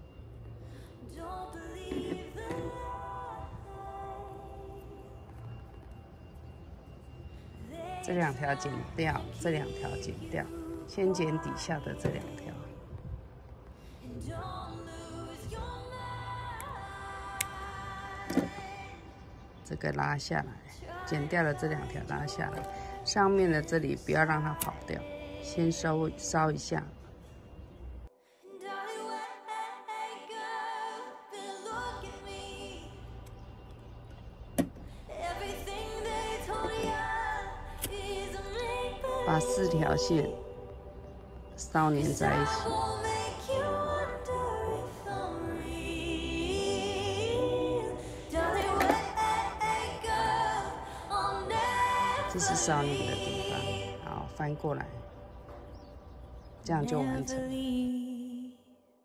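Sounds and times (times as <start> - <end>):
low steady hum: 31.7 - 58.2
faint low rumble: 32.0 - 57.8.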